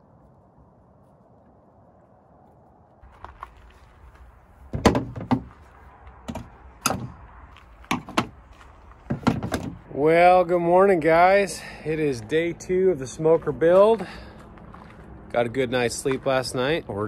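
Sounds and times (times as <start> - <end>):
tools knocking on metal truck bed: 4.7 - 5.5, 6.3 - 7.2, 7.9 - 8.4, 9.1 - 9.8.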